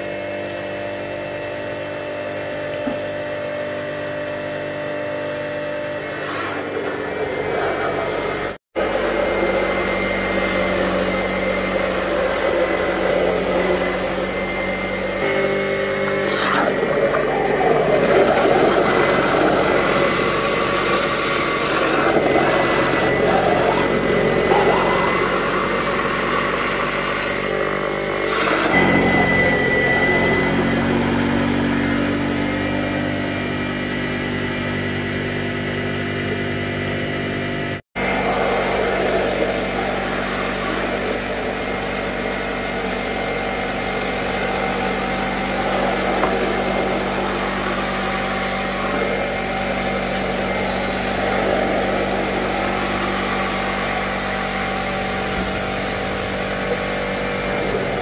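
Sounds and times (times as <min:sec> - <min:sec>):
grinder motor humming: 0:00.0 - 0:58.0.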